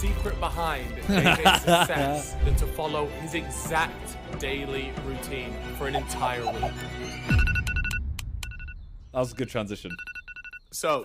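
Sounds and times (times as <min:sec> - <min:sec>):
electronic alarm beeping: 0:06.4 - 0:10.9.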